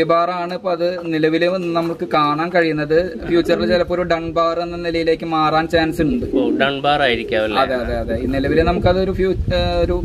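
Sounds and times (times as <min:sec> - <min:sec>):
pigeons cooing: 0:01.5 - 0:04.0, 0:04.7 - 0:08.8.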